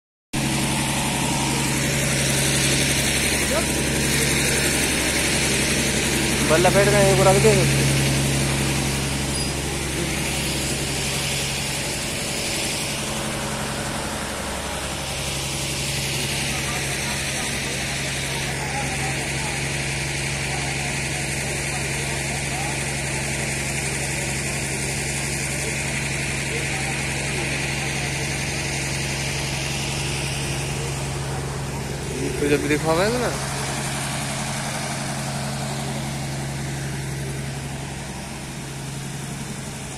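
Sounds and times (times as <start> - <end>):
faint voices: 0.4 - 39.9
mechanical hum with low drone: 0.4 - 39.9.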